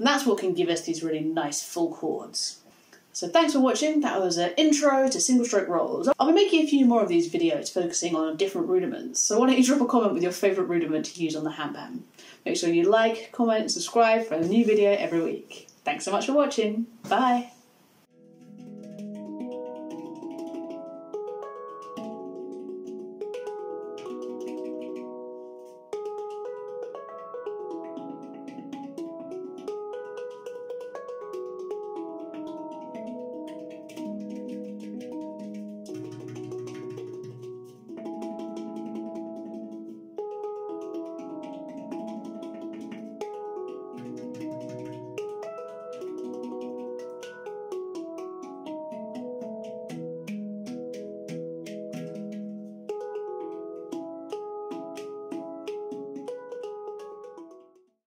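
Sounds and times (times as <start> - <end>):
deep handpan bass notes: 18.1 - 57.8
handpan ringing chords: 18.1 - 57.9.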